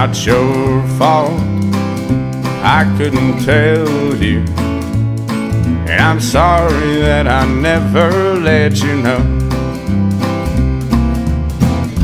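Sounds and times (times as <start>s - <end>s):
man singing: 0.0s - 1.6s, 2.4s - 4.6s, 5.8s - 9.5s
country band playing: 0.0s - 12.0s
guitar: 0.0s - 12.0s.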